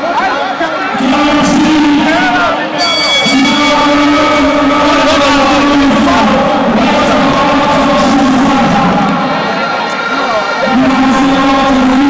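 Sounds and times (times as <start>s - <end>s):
stadium crowd noise: 0.0s - 12.0s
loud horn-like drone: 2.8s - 4.7s.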